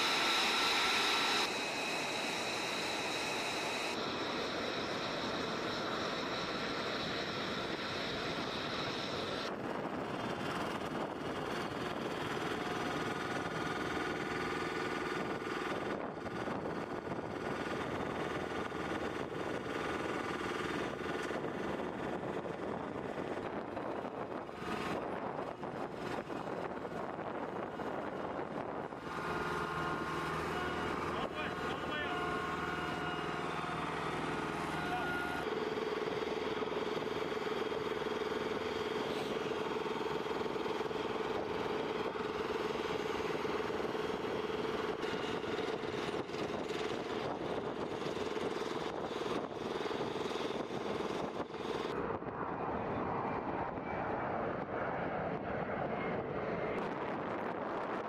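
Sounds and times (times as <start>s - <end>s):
mid-pitched whine: 0.0s - 55.4s
drone of machinery and engines: 0.0s - 58.0s.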